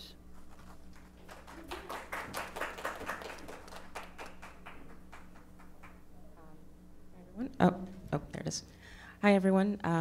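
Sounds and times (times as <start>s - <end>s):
audience applauding: 0.4s - 6.1s.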